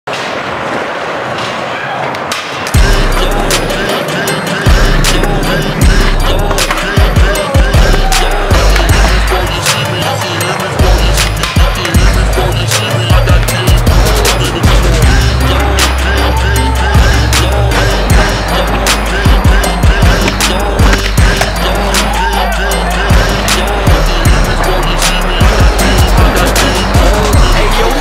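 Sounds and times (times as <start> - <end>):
skateboard wheels rolling on concrete: 0.1 - 28.0
music with heavy bass and drums: 2.8 - 28.0.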